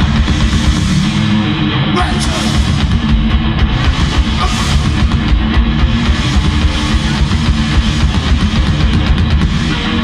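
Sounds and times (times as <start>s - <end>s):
steady drumming: 0.0s - 10.0s.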